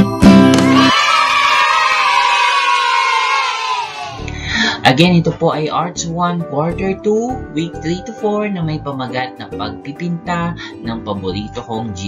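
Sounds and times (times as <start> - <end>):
children cheering: 0.6 - 4.2.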